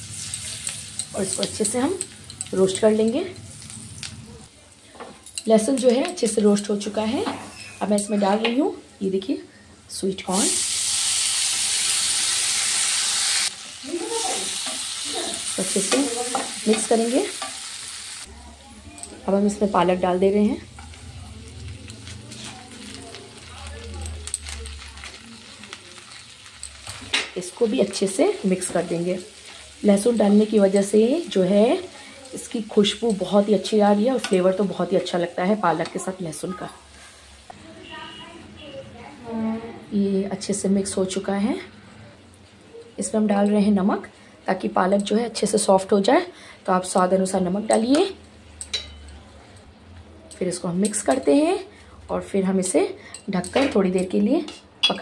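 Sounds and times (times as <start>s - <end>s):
butter sizzling in a frying pan: 0.0s - 4.3s, 10.2s - 18.3s, 19.4s - 37.6s
kitchen utensil clink: 47.7s - 49.2s.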